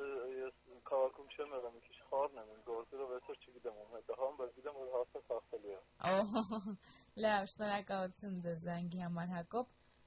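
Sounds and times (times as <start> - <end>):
person talking: 0.0 - 9.6.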